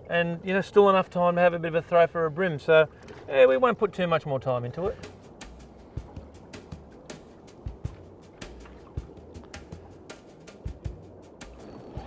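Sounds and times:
fishing reel ticking: 11.5 - 12.0.

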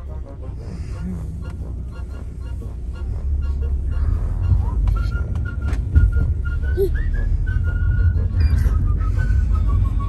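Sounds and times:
road rumble inside car: 0.0 - 10.0.

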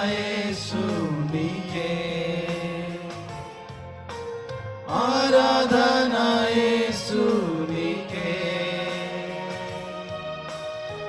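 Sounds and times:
men singing worship song: 0.0 - 3.8, 4.9 - 10.2.

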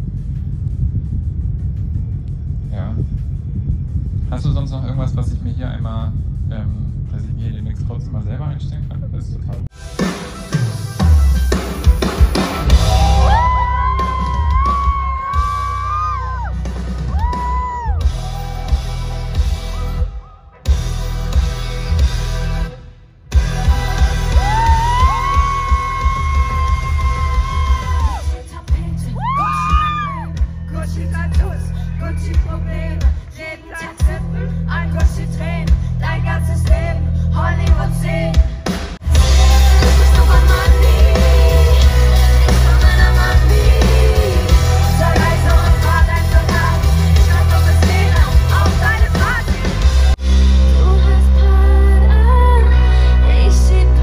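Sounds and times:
bass guitar: 0.0 - 33.3, 34.0 - 54.0
drums: 0.0 - 54.0.

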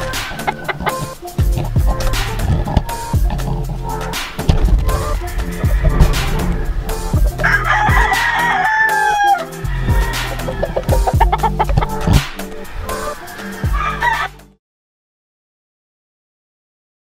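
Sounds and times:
rooster crowing: 0.0 - 1.2, 4.8 - 11.7, 12.8 - 14.5
background music with steady beat: 0.0 - 14.6.

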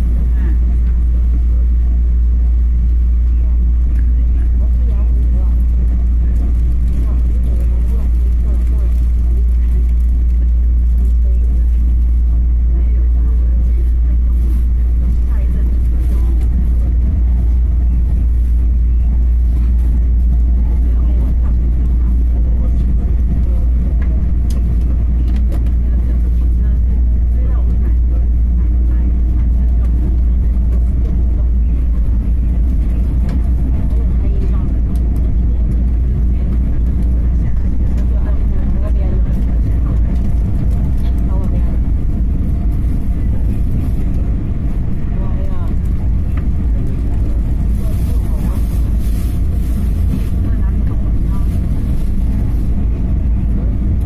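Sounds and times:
faint voices: 0.0 - 54.0
train rumbling on rails: 0.0 - 54.0.

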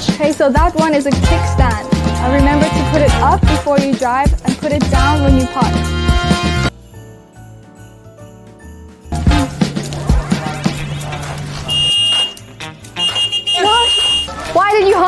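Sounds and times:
woman's voice: 0.0 - 5.9, 13.6 - 15.0
background music: 0.0 - 15.0
horn beeps: 11.6 - 14.5.

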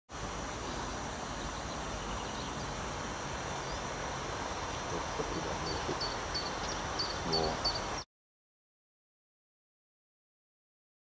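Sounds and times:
outdoor background hiss: 0.1 - 8.1.

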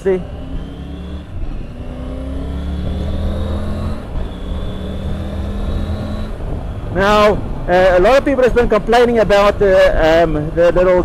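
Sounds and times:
motorcycle engine accelerating: 0.0 - 8.8
wind noise: 0.2 - 11.0.

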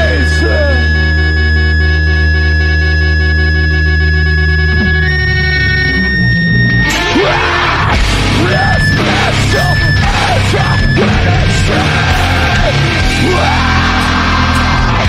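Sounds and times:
distorted guitar chords: 0.0 - 15.0
full band with drums: 6.9 - 15.0.

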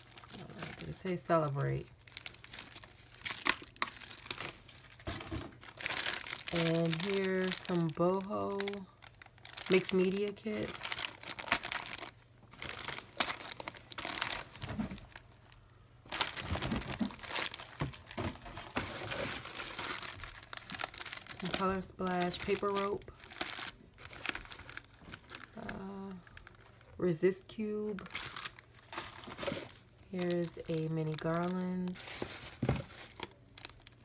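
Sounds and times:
plastic packaging crinkling: 0.0 - 27.0, 27.8 - 34.0.

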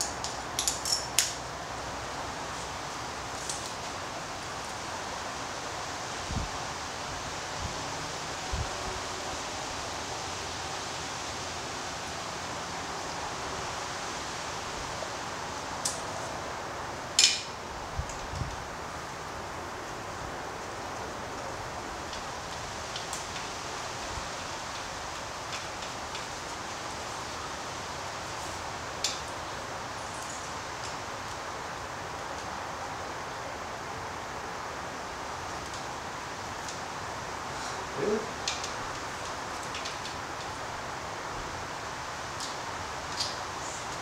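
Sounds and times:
steady background hiss: 0.0 - 44.0
metal tools clinking: 0.6 - 1.2.

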